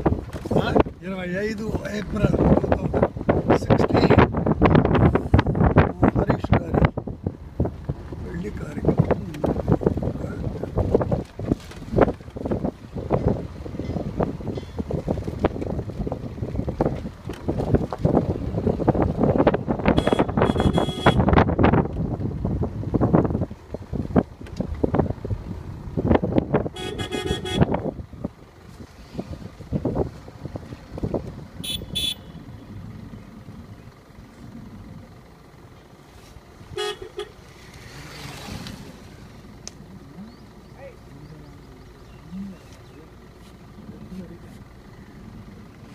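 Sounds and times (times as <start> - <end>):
road and wind rumble: 0.0 - 45.9
vehicle horn tooting: 19.9 - 21.3, 26.7 - 27.8, 31.6 - 32.5, 36.7 - 37.4.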